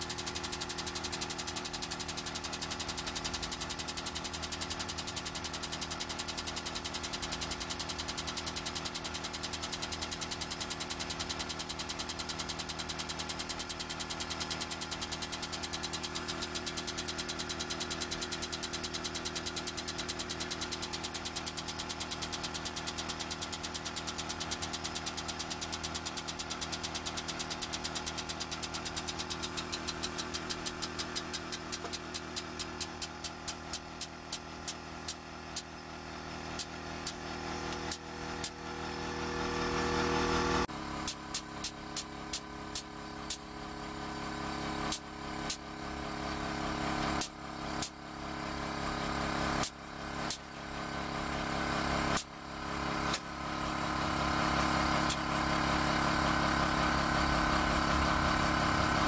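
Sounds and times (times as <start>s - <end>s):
hydraulic pump pulsing: 0.0s - 59.0s.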